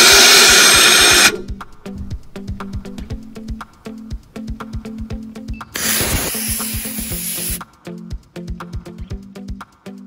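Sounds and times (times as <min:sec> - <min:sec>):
rocket motor hissing burn: 0:00.0 - 0:01.6, 0:05.8 - 0:07.6
background music with steady beat: 0:00.8 - 0:10.0.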